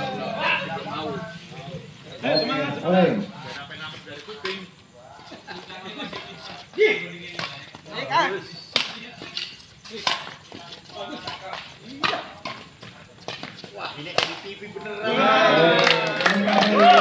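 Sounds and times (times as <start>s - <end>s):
rackets smacking shuttlecock: 7.3s - 7.8s, 8.7s - 14.5s
people calling out: 14.8s - 17.0s.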